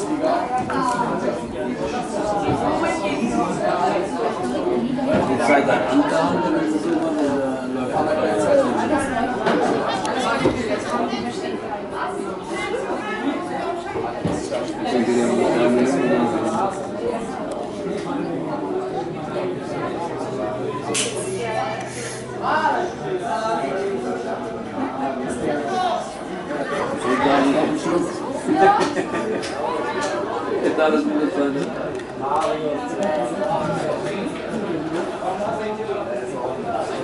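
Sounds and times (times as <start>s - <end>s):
people chattering: 0.0s - 37.0s.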